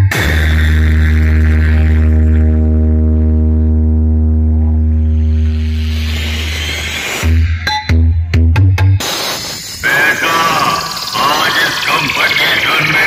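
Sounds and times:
loud electronic music: 0.0s - 13.0s.

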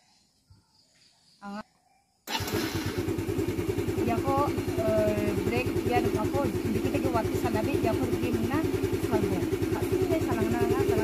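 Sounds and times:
scooter engine starting and idling: 2.3s - 11.0s.

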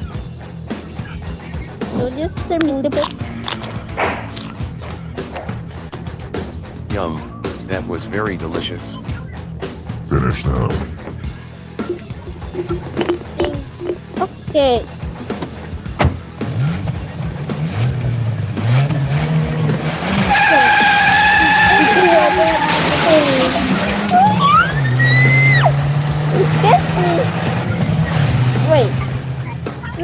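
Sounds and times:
car engine running: 0.0s - 30.0s
tires skidding: 3.1s - 8.1s, 8.7s - 29.9s.

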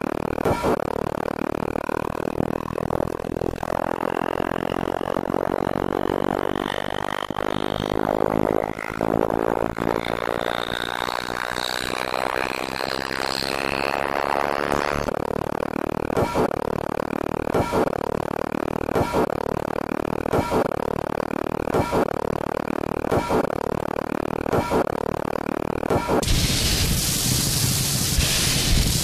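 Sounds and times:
churning electronic noise: 0.0s - 29.0s.

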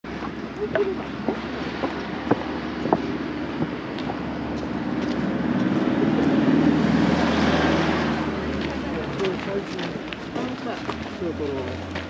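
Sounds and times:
footsteps on pavement: 0.1s - 12.0s
people talking: 0.5s - 1.8s, 8.2s - 11.8s.

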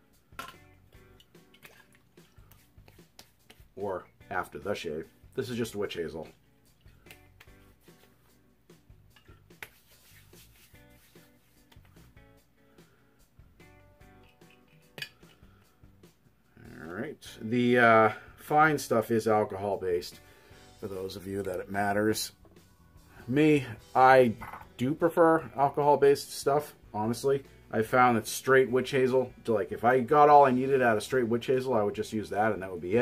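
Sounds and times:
faint background music: 0.0s - 33.0s
wet squishing of hands: 1.1s - 3.8s.

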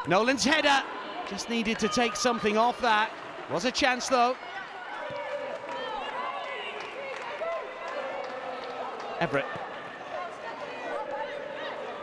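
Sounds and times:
background murmur of voices: 0.0s - 12.0s.

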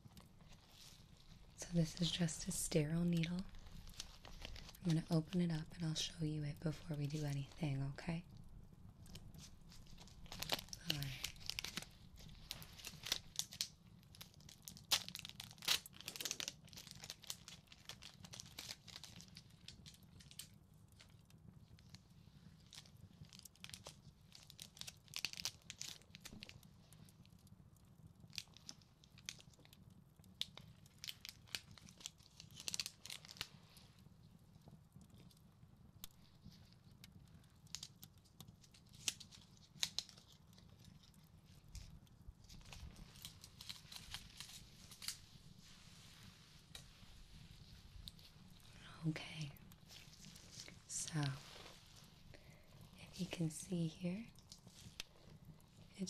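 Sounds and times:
packet crinkling and tearing: 0.0s - 6.1s, 9.0s - 21.2s, 22.6s - 26.6s, 28.2s - 33.6s, 36.0s - 45.6s, 46.2s - 53.4s, 54.2s - 55.9s.

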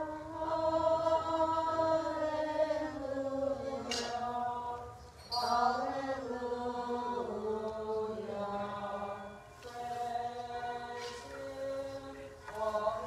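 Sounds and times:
a cappella liturgical chant: 0.0s - 13.0s.

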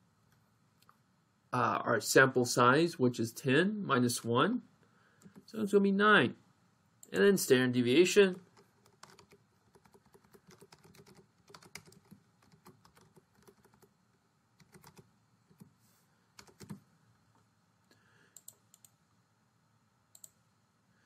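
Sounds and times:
faint computer keyboard typing: 5.2s - 5.6s, 8.3s - 14.0s, 14.6s - 15.8s, 16.4s - 16.8s, 18.3s - 19.0s, 20.1s - 20.4s.

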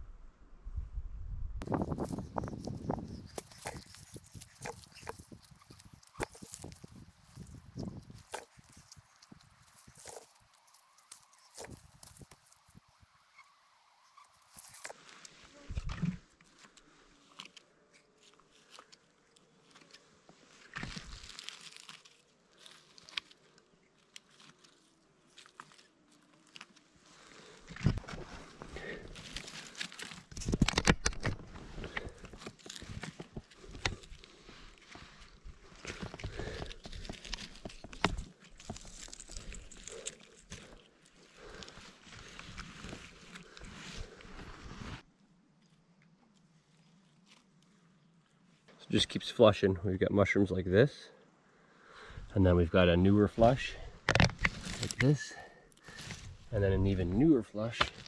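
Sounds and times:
rustling: 1.6s - 45.1s, 53.4s - 58.0s
crackling of twigs and debris: 1.6s - 48.4s, 53.4s - 58.0s.

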